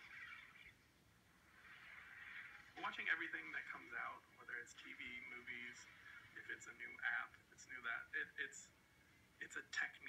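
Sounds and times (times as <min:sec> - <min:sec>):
faint hiss: 0:00.0 - 0:10.0.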